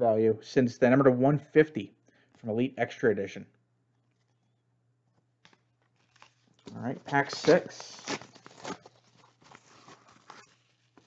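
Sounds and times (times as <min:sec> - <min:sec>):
wrapper rustling: 0:05.5 - 0:11.0.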